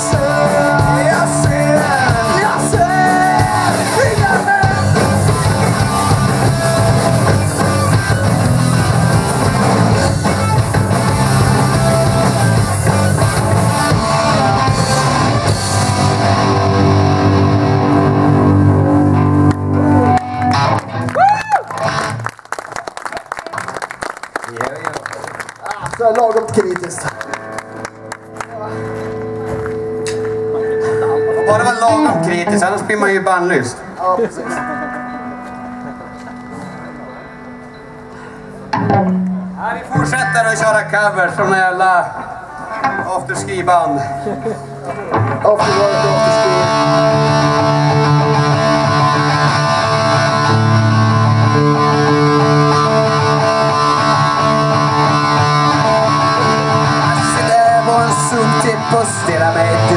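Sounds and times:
man singing: 0.0 - 5.2, 56.4 - 59.9
drums: 0.0 - 22.2, 38.6 - 40.8, 44.6 - 59.9
bass guitar: 0.0 - 22.3, 25.8 - 37.5, 38.6 - 59.9
electric guitar: 0.0 - 59.9.

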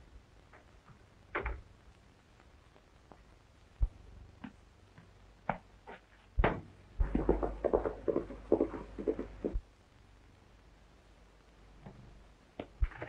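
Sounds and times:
footsteps thudding: 3.8 - 9.6.

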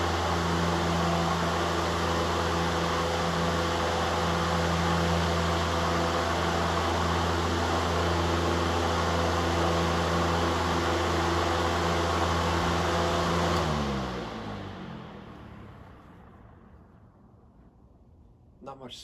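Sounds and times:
electric fan running: 0.0 - 18.6
fan spinning down: 0.0 - 19.0.

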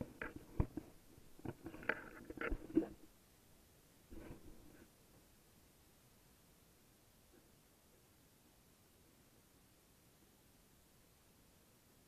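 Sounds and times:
rustling and knocks on microphone: 0.0 - 3.1, 4.1 - 4.8.

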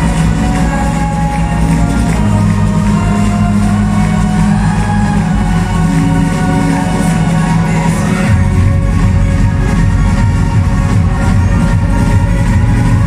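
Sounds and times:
deep sustained bass notes: 0.0 - 13.0.

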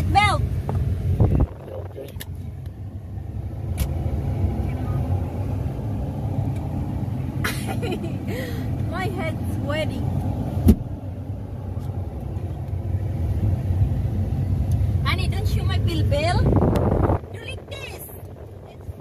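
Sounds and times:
truck engine rumbling: 0.0 - 19.0
voices: 17.3 - 19.0.

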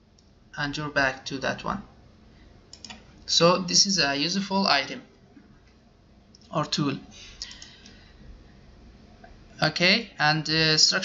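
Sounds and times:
low room hum: 0.0 - 11.0
computer mouse clicks: 2.7 - 3.1, 7.4 - 8.0.

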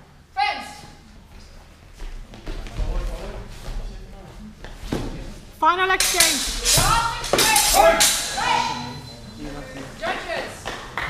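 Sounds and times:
steel swords clashing: 6.0 - 9.0
people shouting: 6.2 - 9.0.

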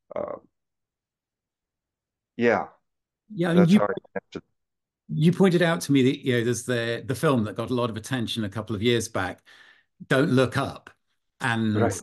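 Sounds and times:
man saying uh: 3.4 - 4.4, 11.8 - 12.0.

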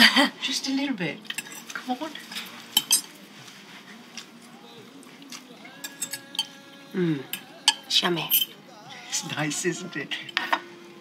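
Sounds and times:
cutlery and crockery clinking: 1.2 - 3.2, 5.3 - 6.7, 7.3 - 9.6, 10.2 - 10.7.

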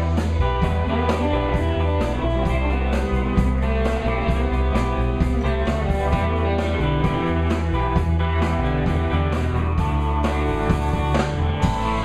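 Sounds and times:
live rock band playing: 0.0 - 12.0.

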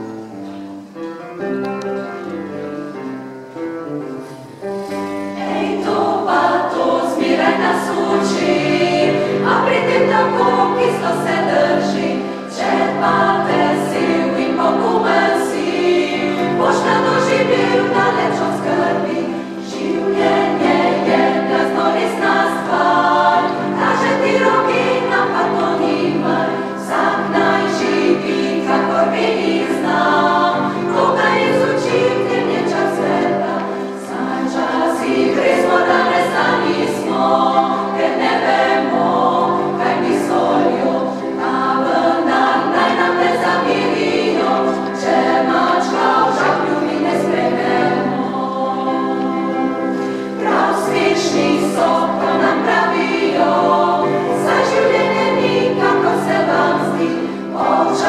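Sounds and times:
women's choir singing: 4.4 - 58.0.

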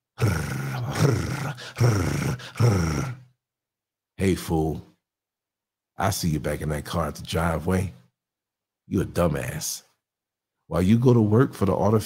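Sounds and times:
man laughing low: 0.2 - 3.1.

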